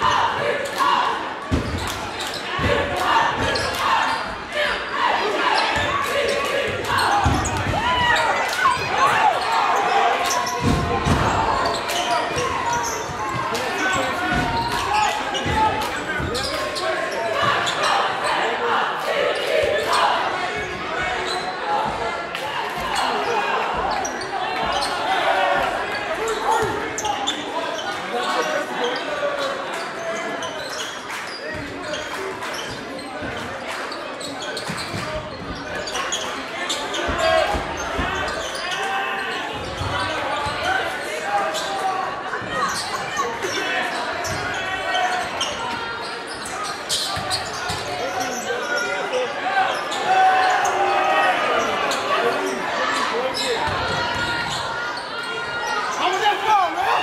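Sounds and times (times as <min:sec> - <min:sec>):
crowd chatter and shouts: 0:00.0 - 0:57.0.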